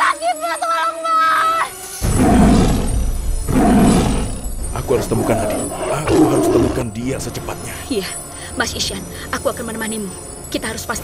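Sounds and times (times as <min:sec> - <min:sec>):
tiger roaring: 0:02.0 - 0:06.9.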